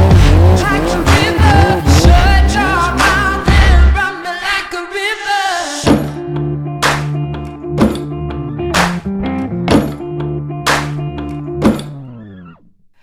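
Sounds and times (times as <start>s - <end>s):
music with heavy beat: 0.0s - 4.1s, 5.8s - 11.6s.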